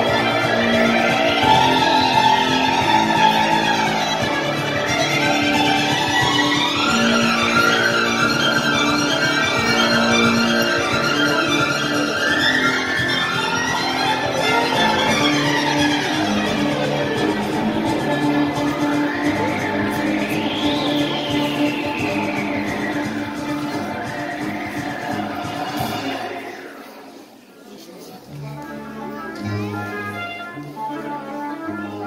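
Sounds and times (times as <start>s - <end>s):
held low notes: 0.0s - 26.7s
violin playing sweeping runs: 0.0s - 27.0s, 28.4s - 32.0s.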